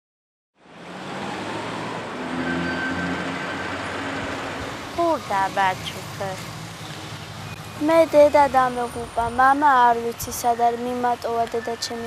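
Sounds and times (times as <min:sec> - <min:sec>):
street traffic: 0:00.6 - 0:12.0.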